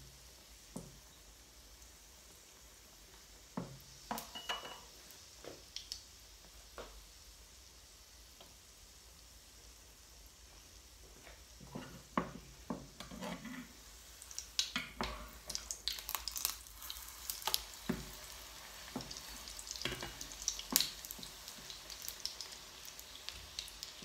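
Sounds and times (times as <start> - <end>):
pancake sizzling in oil: 0.0 - 24.0
spatula scraping and tapping pan: 11.2 - 13.9, 17.4 - 18.2, 18.9 - 21.7.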